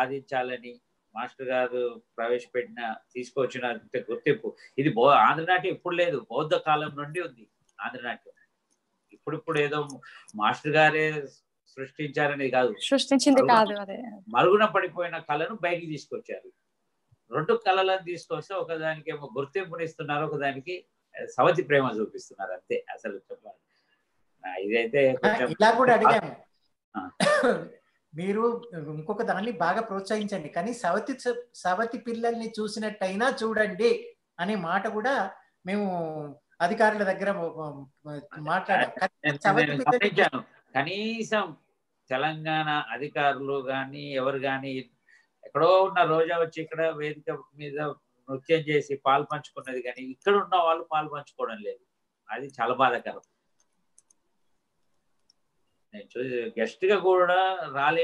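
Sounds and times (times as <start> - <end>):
man speaking: 0.0 - 8.3, 9.3 - 16.5, 17.3 - 23.5, 24.4 - 26.4, 27.0 - 35.8, 36.6 - 44.8, 45.4 - 53.2, 56.0 - 58.0
person speaking: 9.3 - 11.3, 12.0 - 16.4, 24.4 - 26.4, 27.0 - 41.5
throat clearing: 27.0 - 27.7.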